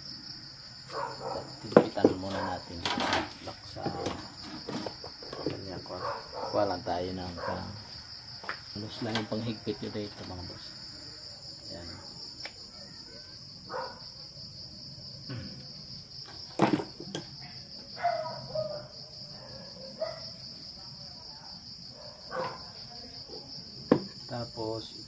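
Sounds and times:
crickets chirping: 0:00.0 - 0:25.0
tools knocking on workbench: 0:01.7 - 0:03.2, 0:16.3 - 0:17.3, 0:23.9 - 0:24.2.

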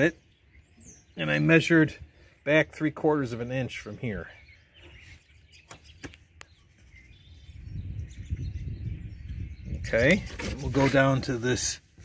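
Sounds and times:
faint bird chirps: 0:03.6 - 0:10.3.

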